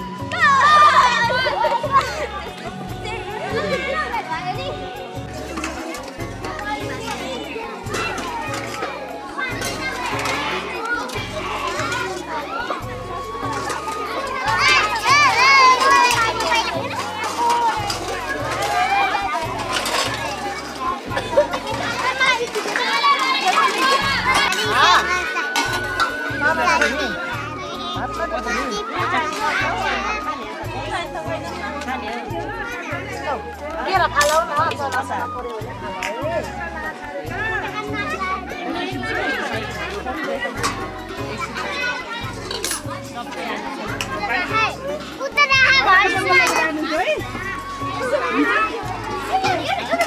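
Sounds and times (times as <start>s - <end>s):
background music: 0.0s - 50.0s
children shouting and chattering: 0.0s - 50.0s.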